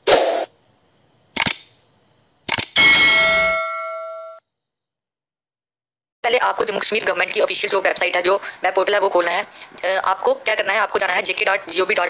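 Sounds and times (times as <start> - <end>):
notification bell ding: 2.8 - 4.4.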